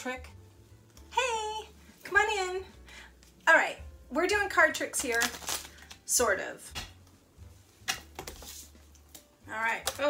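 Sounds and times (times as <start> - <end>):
cards and board handled on table: 7.8 - 10.0.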